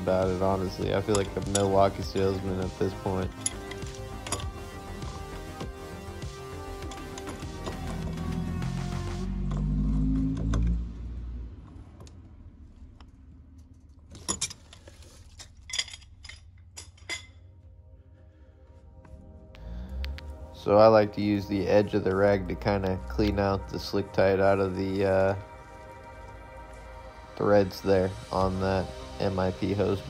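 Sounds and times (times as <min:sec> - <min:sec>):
background music: 0:00.0 - 0:11.7, 0:15.6 - 0:30.0
metallic clinks of pipe wrench: 0:00.7 - 0:02.2, 0:03.2 - 0:04.7, 0:06.8 - 0:07.9, 0:14.2 - 0:17.4.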